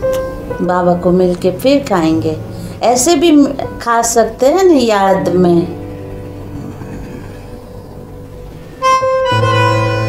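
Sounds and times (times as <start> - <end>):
low music drone: 0.0 - 10.0
held musical note: 5.3 - 10.0.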